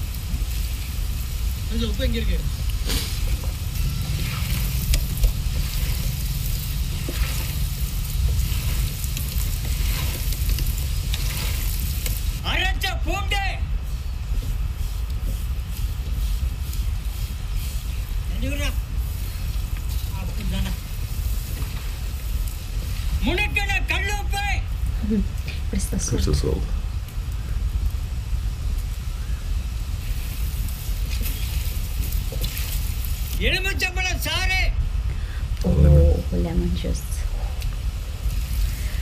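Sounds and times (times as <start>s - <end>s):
fish frying in hot oil: 0.0s - 25.1s, 26.2s - 34.7s.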